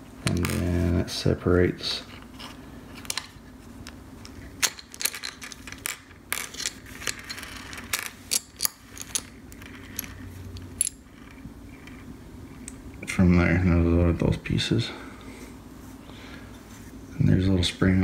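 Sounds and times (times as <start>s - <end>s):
small parts clicking on stone: 3.0s - 12.0s.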